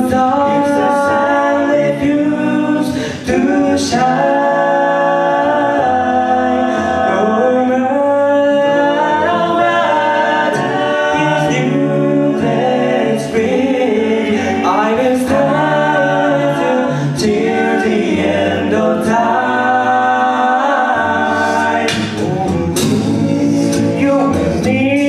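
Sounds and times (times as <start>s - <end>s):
male a cappella group singing: 0.0s - 25.0s.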